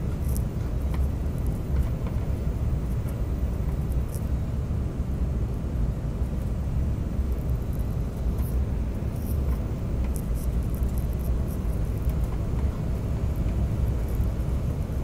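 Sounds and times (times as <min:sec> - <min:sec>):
airliner cabin low rumble: 0:00.0 - 0:15.0.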